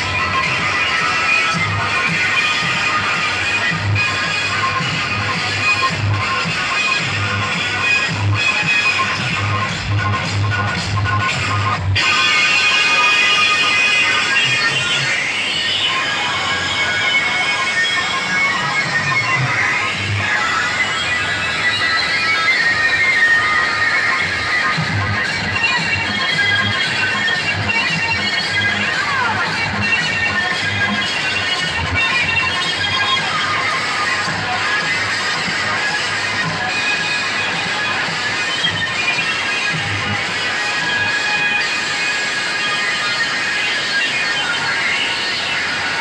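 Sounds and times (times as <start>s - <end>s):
heavy bass beat: 0.0s - 12.7s
loud music through loudspeakers: 0.0s - 46.0s.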